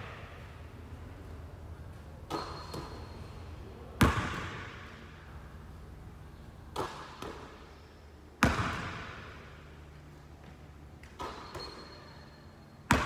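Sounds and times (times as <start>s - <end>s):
basketball bouncing on gym floor: 2.3s - 3.2s, 4.0s - 5.0s, 6.7s - 7.6s, 8.4s - 9.5s, 10.4s - 12.1s.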